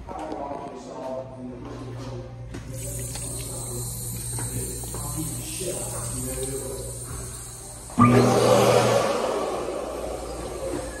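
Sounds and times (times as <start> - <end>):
hand dryer blowing air: 3.2 - 11.0.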